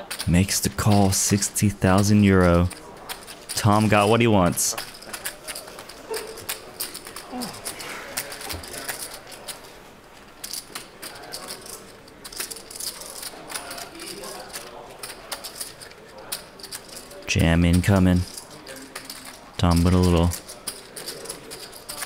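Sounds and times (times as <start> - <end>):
poker chips clicking: 0.0 - 22.0
murmured talk: 5.1 - 10.0.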